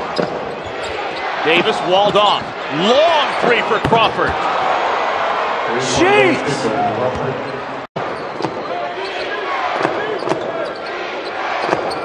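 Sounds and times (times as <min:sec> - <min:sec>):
sneakers squeaking: 0:00.0 - 0:01.7, 0:07.1 - 0:12.0
crowd murmur: 0:05.7 - 0:07.9.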